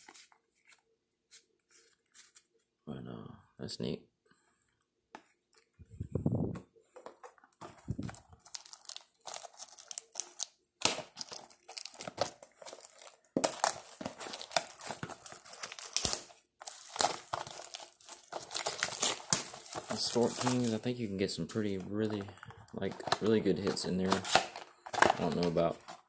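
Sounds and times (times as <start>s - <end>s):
plastic packaging crinkling: 7.0s - 26.0s.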